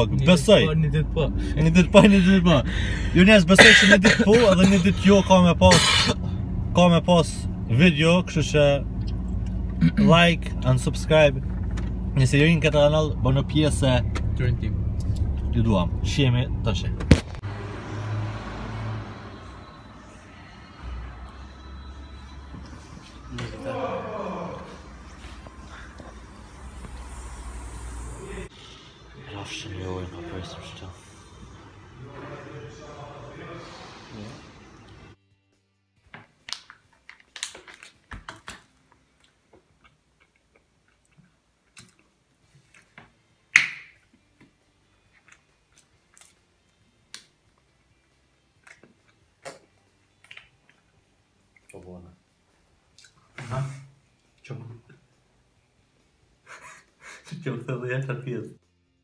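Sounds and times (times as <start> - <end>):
truck engine passing: 0.0 - 35.2
loud sharp snap: 43.5 - 44.0.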